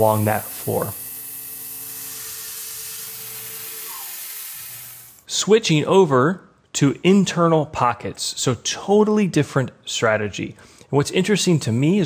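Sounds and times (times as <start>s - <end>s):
coolant spraying hiss: 0.0s - 1.0s
faint milling cut tones: 0.0s - 5.2s.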